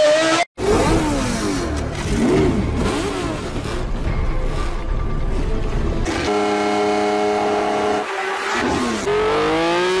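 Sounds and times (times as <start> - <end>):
racing engine revving: 0.0 - 4.8, 6.0 - 10.0.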